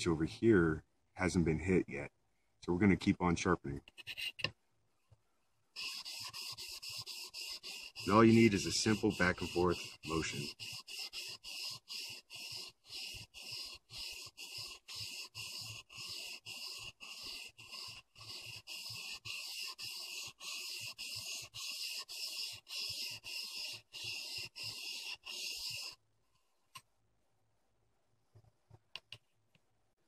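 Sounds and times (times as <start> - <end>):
blade rubbing on whetstone: 3.9 - 4.5, 5.8 - 26.0.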